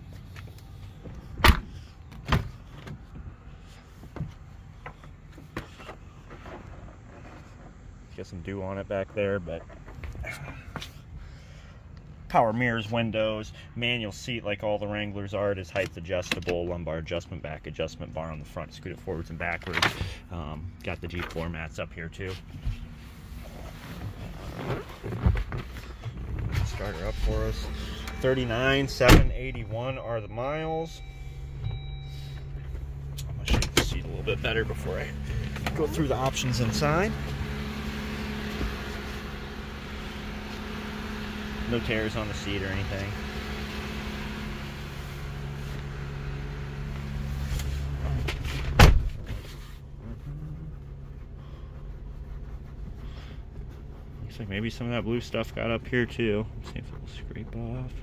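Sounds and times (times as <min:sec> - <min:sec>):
rustling in a vehicle seat: 0:19.1 - 0:30.0, 0:31.0 - 0:58.0
car engine idling: 0:25.7 - 0:58.0.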